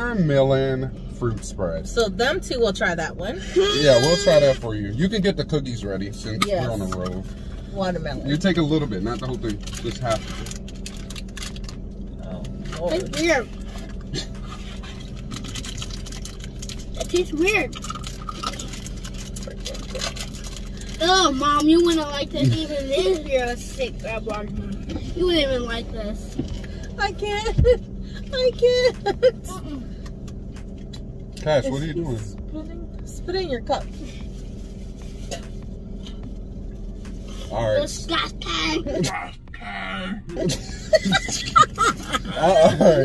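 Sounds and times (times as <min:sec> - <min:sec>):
low hum inside car cabin: 0:00.0 - 0:43.0.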